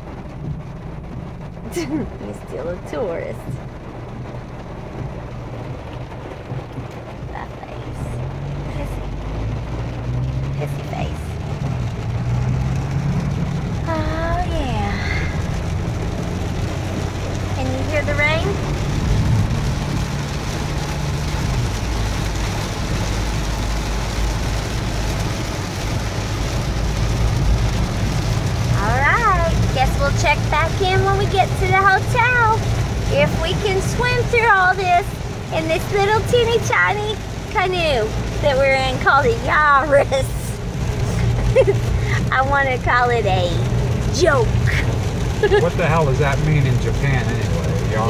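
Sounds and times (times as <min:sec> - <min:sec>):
car engine rumble inside cabin: 0:00.0 - 0:48.0
tyres hissing on wet road: 0:00.0 - 0:48.0.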